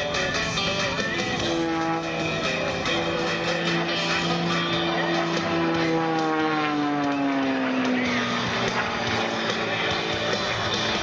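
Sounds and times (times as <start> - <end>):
music: 0.0 - 11.0
propeller airplane droning: 0.0 - 11.0.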